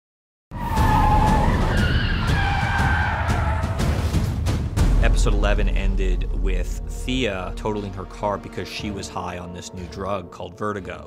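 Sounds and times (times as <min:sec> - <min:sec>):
car tires squealing: 0:00.5 - 0:04.0
low rumble: 0:04.8 - 0:08.3.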